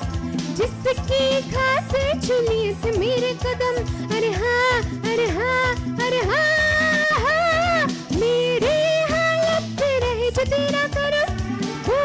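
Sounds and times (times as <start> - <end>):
instrumental backing with steady beat: 0.0 - 12.0
woman singing into a microphone: 0.0 - 12.0.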